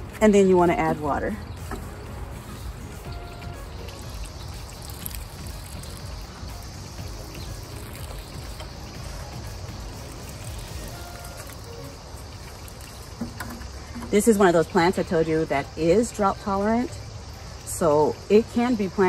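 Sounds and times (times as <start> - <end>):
water pouring from watering can onto soil: 0.0 - 16.2.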